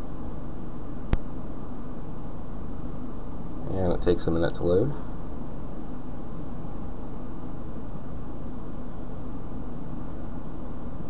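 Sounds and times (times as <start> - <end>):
low hum and rushing noise: 0.0 - 11.0.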